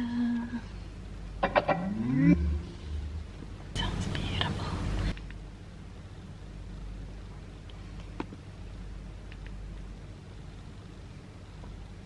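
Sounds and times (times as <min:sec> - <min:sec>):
low bass notes: 0:01.3 - 0:04.9
electronic rising sweep: 0:01.4 - 0:03.6.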